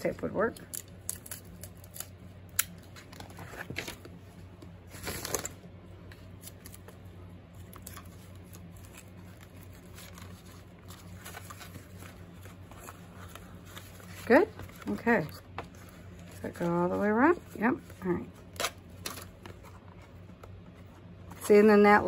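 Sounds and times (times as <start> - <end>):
faint low hum: 0.0 - 22.0
paper rustling: 7.6 - 21.6.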